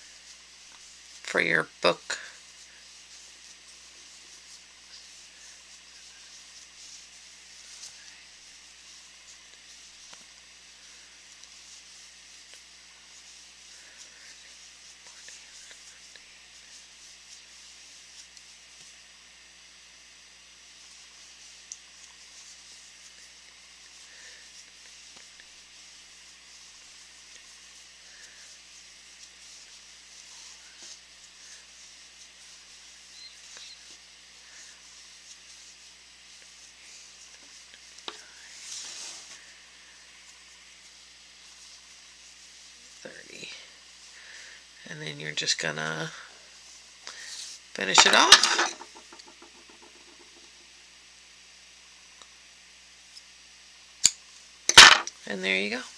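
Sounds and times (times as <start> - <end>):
yarn rustling over crochet hook: 0.0 - 19.0, 20.6 - 39.5, 46.6 - 50.6
background hiss: 0.0 - 55.9.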